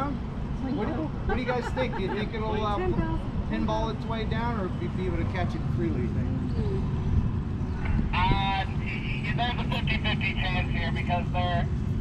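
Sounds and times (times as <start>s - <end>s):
low outdoor rumble: 0.0s - 12.0s.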